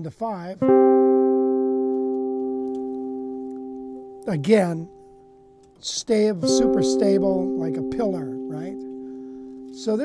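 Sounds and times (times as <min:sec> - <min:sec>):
electric guitar interval ringing: 0:00.6 - 0:10.0.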